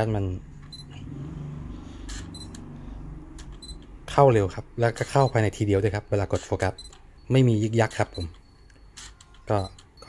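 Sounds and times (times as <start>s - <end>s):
high focus confirmation beep: 3.6s - 3.8s.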